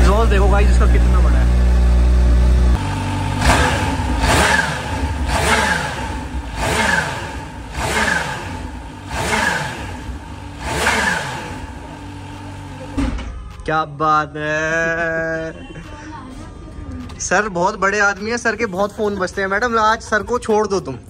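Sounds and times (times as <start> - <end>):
motorcycle engine revving: 0.0 - 13.0.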